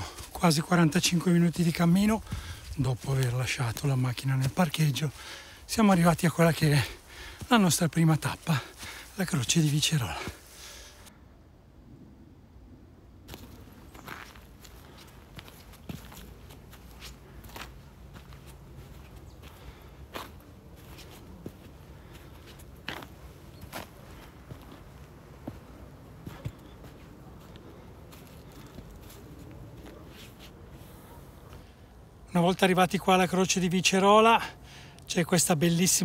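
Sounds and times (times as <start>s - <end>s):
footsteps on stony dirt path: 0.0s - 11.1s, 13.3s - 30.6s.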